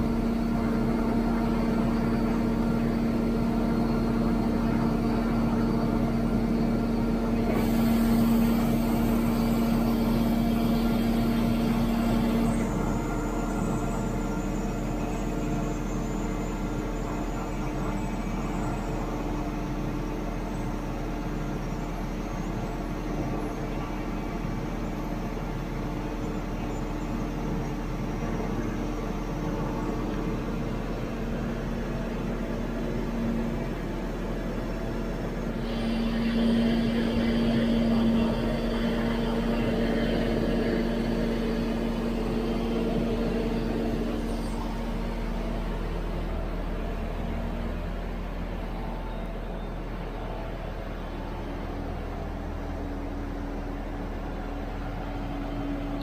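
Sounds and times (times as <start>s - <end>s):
crane engine and hydraulics: 0.0s - 56.0s.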